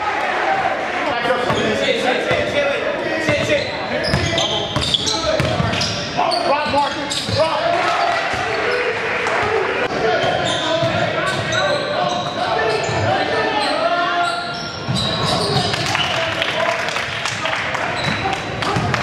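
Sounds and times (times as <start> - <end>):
people calling out and talking: 0.0 - 19.0.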